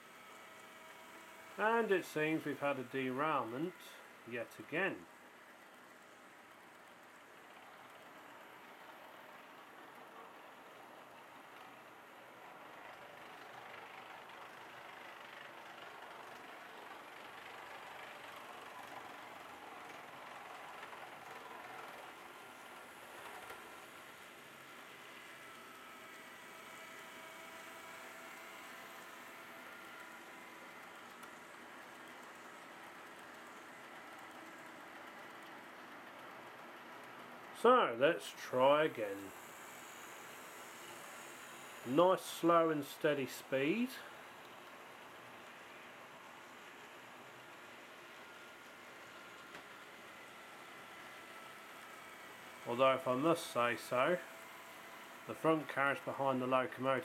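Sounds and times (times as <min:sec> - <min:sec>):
faint motor whine: 0:00.0 - 0:57.0
model train wheels rolling on rails: 0:00.0 - 0:57.0.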